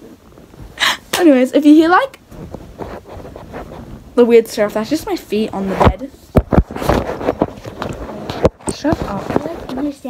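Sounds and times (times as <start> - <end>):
bedding rustling: 0.0 - 10.0
sharp thumps on microphone: 5.5 - 9.9.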